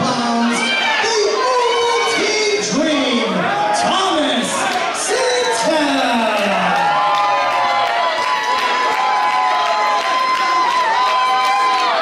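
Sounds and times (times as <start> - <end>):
announcer calling over microphone: 0.0 - 6.7
crowd cheering: 0.0 - 12.0.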